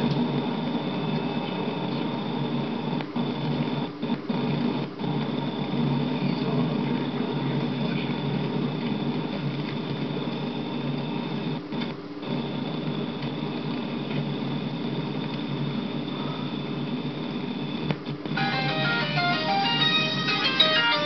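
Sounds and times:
thin high whine: 0:18.3 - 0:21.0.

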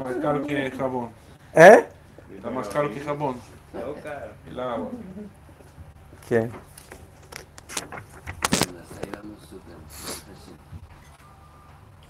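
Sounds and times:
objects clicking and rattling: 0:06.7 - 0:09.2.

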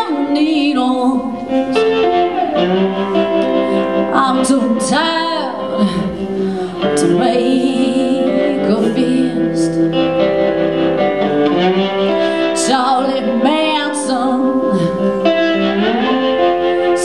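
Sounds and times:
woman singing: 0:00.0 - 0:01.8, 0:03.8 - 0:10.2, 0:12.4 - 0:16.1
electric guitar: 0:00.0 - 0:17.0.

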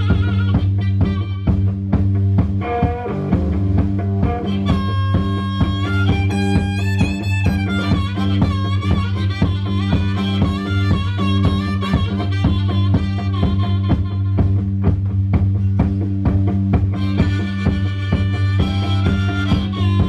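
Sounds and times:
amplified harmonica: 0:00.0 - 0:20.0
electric guitar riff: 0:00.0 - 0:20.0.

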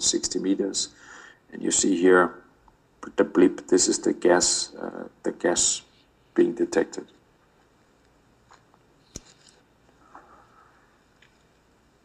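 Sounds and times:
faint small noises: 0:00.0 - 0:12.0.

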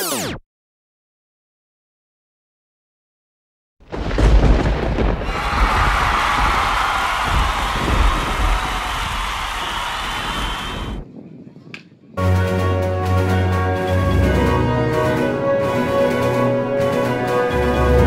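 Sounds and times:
wind rumbling on microphone: 0:04.0 - 0:12.2
background music: 0:12.2 - 0:18.0.

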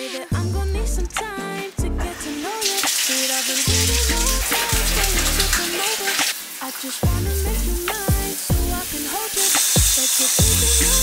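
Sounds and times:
pop song: 0:00.0 - 0:11.0
shower water spraying: 0:02.1 - 0:11.0.

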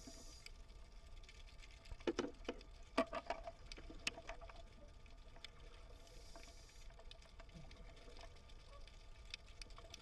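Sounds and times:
faint high hiss: 0:00.0 - 0:01.0.

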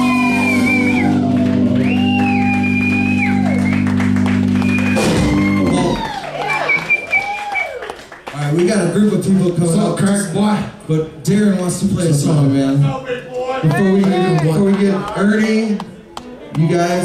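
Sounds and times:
rock band sustained chord: 0:00.0 - 0:05.7.

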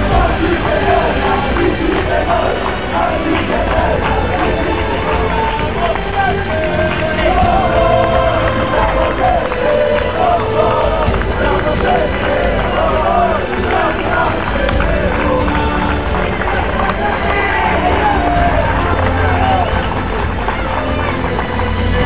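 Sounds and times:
football supporters chanting: 0:00.0 - 0:22.0.

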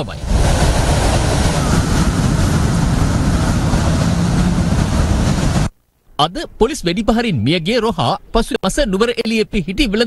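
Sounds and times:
loud steady rumbling: 0:00.0 - 0:05.8.

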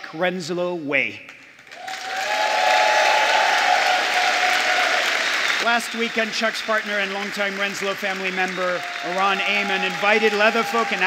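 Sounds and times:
audience applauding: 0:01.6 - 0:11.0.

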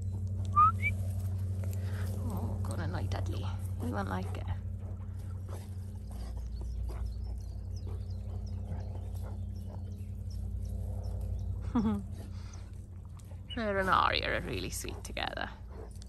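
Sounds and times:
steady low hum: 0:00.0 - 0:16.0
dogs scuffling in grass: 0:00.1 - 0:11.4
person laughing: 0:11.6 - 0:12.3.

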